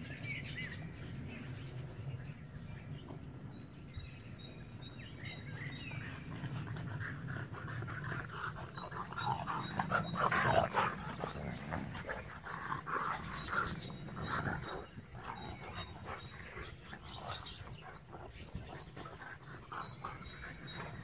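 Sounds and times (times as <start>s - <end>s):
dogs growling: 5.2s - 21.0s.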